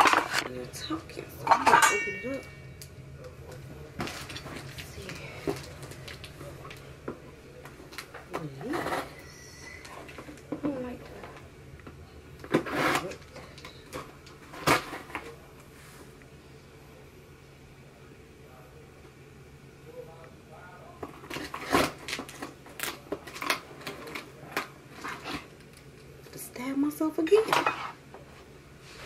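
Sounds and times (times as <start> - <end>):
cardboard packaging rustling: 4.0 - 7.0.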